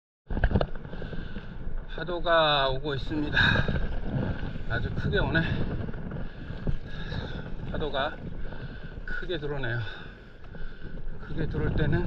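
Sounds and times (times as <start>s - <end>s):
water moving around paddleboard: 0.3s - 12.0s
wind rumbling on microphone: 0.3s - 12.0s.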